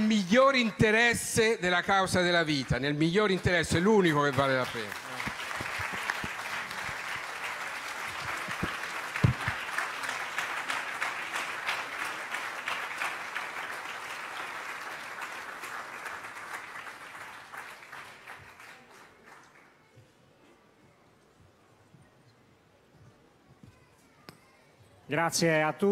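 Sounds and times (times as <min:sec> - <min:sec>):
audience applauding: 0:02.2 - 0:19.7.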